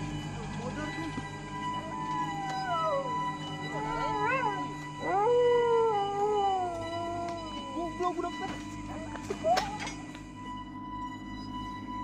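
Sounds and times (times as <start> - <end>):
droning music: 0.0 - 12.0
dog howling: 1.7 - 8.2.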